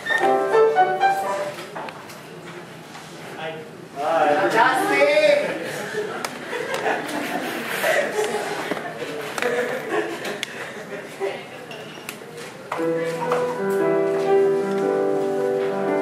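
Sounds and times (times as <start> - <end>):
murmur of people talking: 0.0 - 16.0
upright piano chords: 0.2 - 1.8, 12.8 - 16.0.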